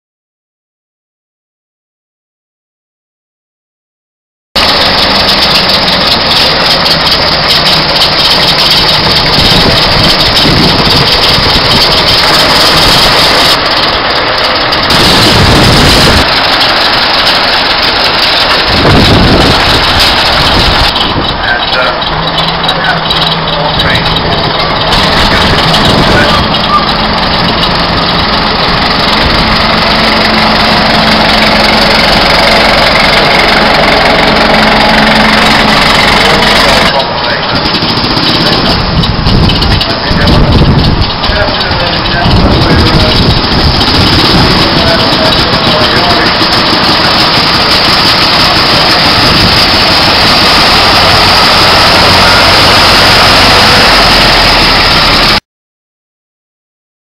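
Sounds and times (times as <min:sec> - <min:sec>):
lorry engine running: 0:04.6 - 0:55.4
people's voices: 0:17.6 - 0:34.6, 0:35.2 - 0:50.4.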